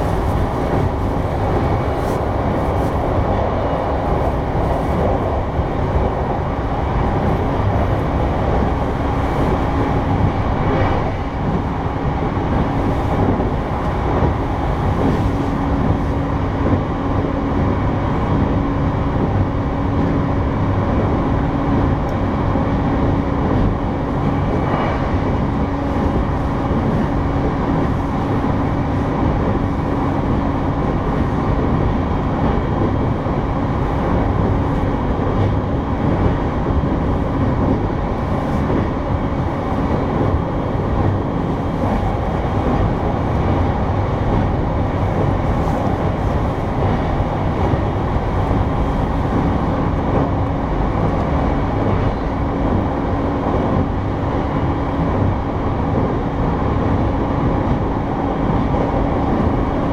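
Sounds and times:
constant train hum: 0:00.0 - 0:59.9
train wheels rumbling on rail: 0:00.0 - 0:59.9.

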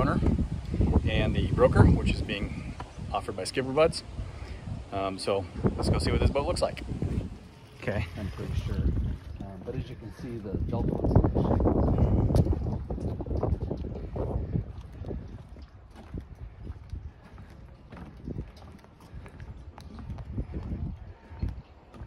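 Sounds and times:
footsteps on wooden boards: 0:08.4 - 0:22.0.

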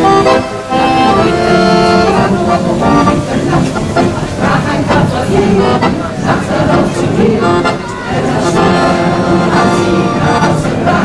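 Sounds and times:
accordion: 0:00.0 - 0:11.0
choir singing: 0:00.0 - 0:11.0.

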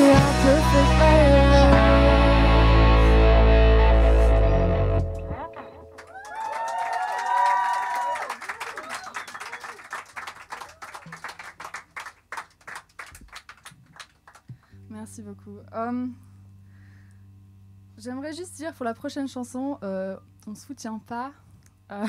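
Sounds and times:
live rock band playing: 0:00.0 - 0:06.0
audience clapping: 0:05.9 - 0:14.7
audience cheering and whooping: 0:06.0 - 0:10.0.

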